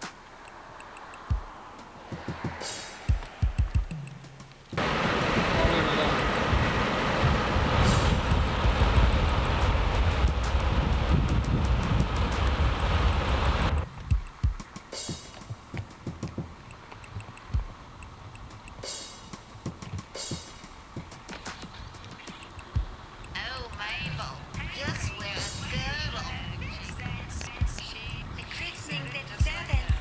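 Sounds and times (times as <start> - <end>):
drum-kit music: 0.0 - 30.0
road and wind noise from car: 0.0 - 30.0.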